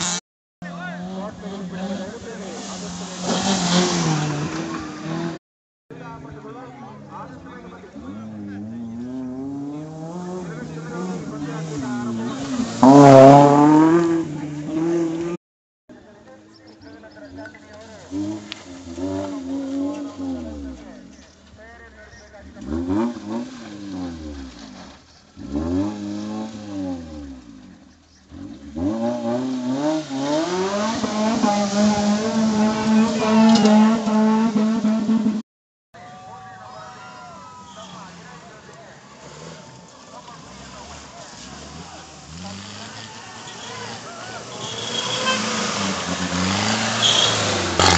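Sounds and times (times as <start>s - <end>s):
distant engine revving: 0.0s - 5.4s, 7.4s - 15.4s, 17.0s - 35.4s, 37.5s - 47.9s
spectators talking: 0.6s - 5.3s, 5.9s - 23.9s, 27.7s - 35.4s, 36.0s - 47.9s
spectators' voices: 36.0s - 45.6s.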